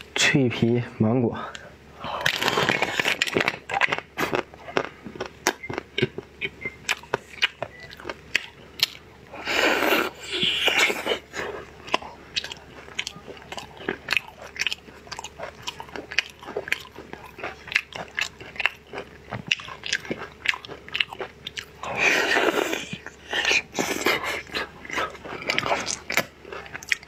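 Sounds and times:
biting and chewing crunches: 2.1 - 27.0.

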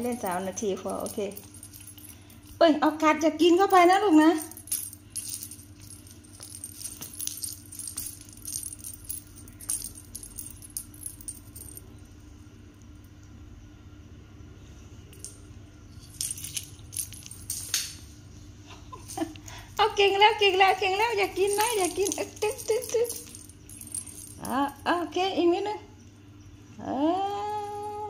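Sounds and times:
small metal bell jingling: 0.0 - 12.0, 15.1 - 18.0, 19.0 - 25.8.

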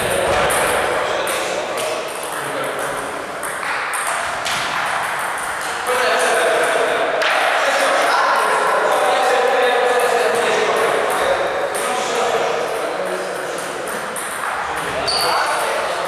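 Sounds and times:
table tennis balls clicking: 0.1 - 5.9, 12.8 - 15.8
voices talking: 5.4 - 16.0.

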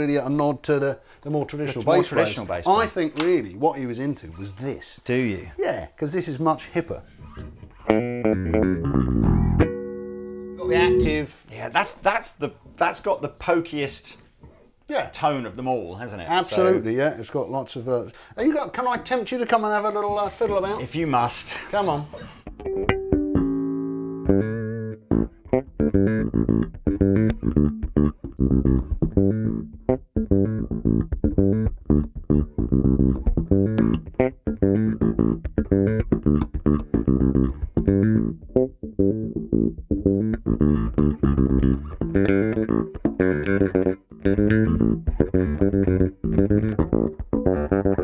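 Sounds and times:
electric bass plucked fingerstyle: 7.2 - 11.3, 22.4 - 48.0.

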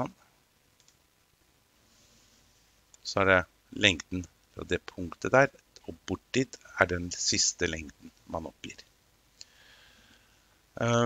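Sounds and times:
person speaking: 2.9 - 8.9, 10.7 - 11.0.

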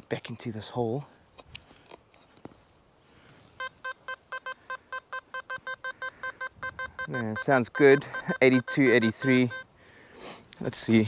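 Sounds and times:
metal detector short beeps: 3.6 - 9.7.

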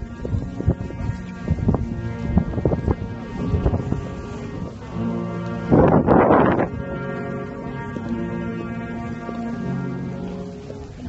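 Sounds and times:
loud rush of noise: 0.0 - 7.6
brass band playing chords: 0.0 - 11.0.

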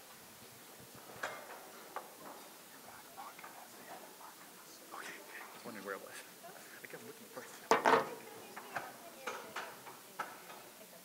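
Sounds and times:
low murmuring voices: 0.7 - 11.0
folding chairs clattering: 0.9 - 2.6, 7.7 - 8.8.

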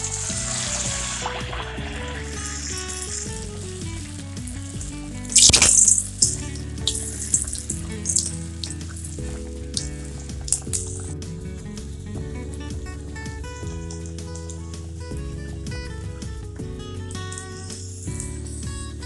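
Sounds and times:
dough sizzling in hot oil: 0.0 - 11.2
melodic music: 0.0 - 19.0
oil crackling: 0.0 - 19.0.

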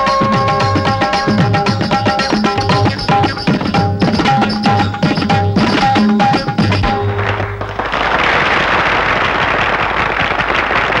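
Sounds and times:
tabla-led film music: 0.0 - 11.0
dense crackling noise: 5.6 - 11.0.

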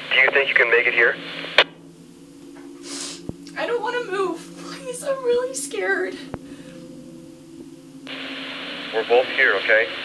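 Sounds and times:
voice over radio: 0.0 - 1.2, 9.0 - 10.0
two-way radio static hiss: 0.0 - 6.9, 7.6 - 10.0
low steady hum: 0.0 - 10.0.

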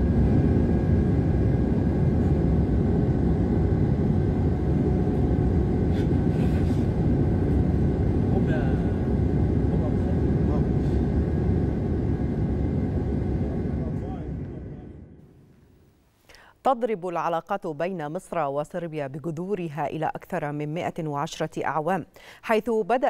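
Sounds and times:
jet airliner cabin rumble: 0.0 - 15.5.

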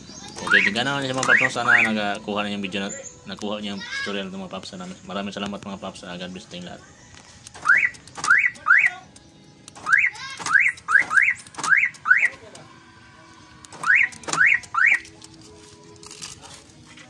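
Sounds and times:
car alarm siren chirps: 0.4 - 2.1, 7.6 - 9.1, 9.8 - 12.4, 13.8 - 15.1.

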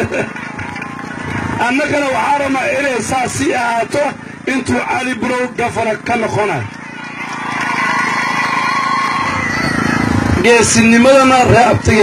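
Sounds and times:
motor drone: 0.0 - 12.0.

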